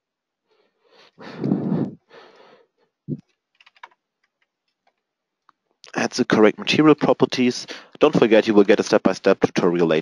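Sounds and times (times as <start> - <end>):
keyboard typing: 3.2 - 5.0.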